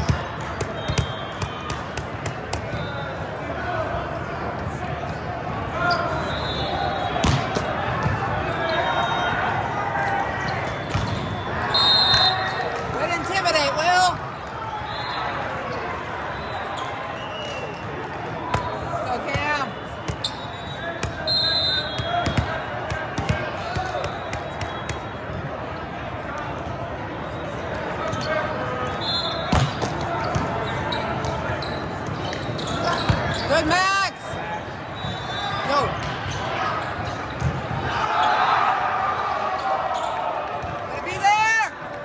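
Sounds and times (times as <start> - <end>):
voices and shouts in hall: 0.0 - 42.0
referee whistles: 0.6 - 1.8, 2.5 - 3.4, 5.8 - 7.5, 8.5 - 9.5, 10.6 - 12.6, 14.8 - 17.8, 18.6 - 22.6, 23.6 - 25.2, 27.2 - 29.8, 34.8 - 36.4
volleyballs being hit: 7.2 - 8.2.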